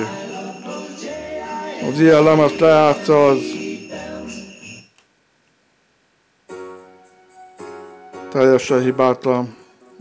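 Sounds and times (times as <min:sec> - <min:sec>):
music: 0:00.0 - 0:04.9, 0:06.5 - 0:10.0.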